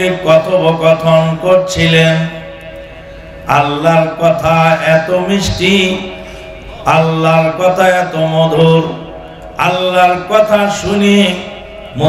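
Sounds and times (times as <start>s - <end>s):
man chanting into microphone: 0.0s - 2.5s, 3.5s - 6.2s, 6.8s - 12.0s.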